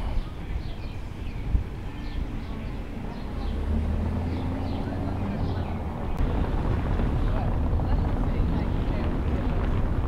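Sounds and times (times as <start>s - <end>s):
traffic: 0.0s - 10.0s
wind buffeting microphone: 0.0s - 10.0s.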